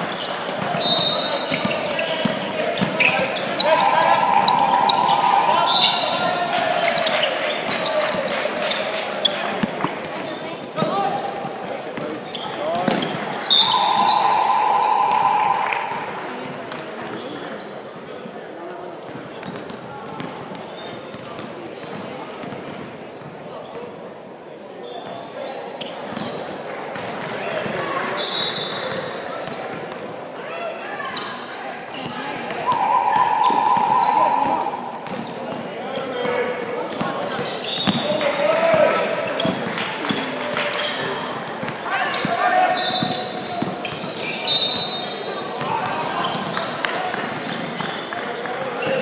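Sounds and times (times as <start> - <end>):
sneaker squeaks: 0.0 - 17.8, 20.4 - 22.5, 24.4 - 26.4, 28.1 - 29.8, 30.9 - 38.1, 40.8 - 48.1
voices in an echoing gym: 0.0 - 49.0
referee's whistle: 0.8 - 7.3, 13.1 - 16.5, 28.2 - 29.0, 32.6 - 35.3, 42.7 - 45.3
scoreboard horn: 13.5 - 16.1.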